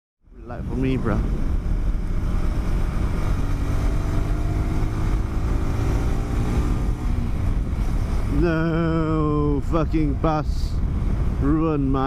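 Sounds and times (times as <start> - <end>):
wind noise: 0.3 - 12.0
motorcycle engine accelerating: 0.5 - 9.7.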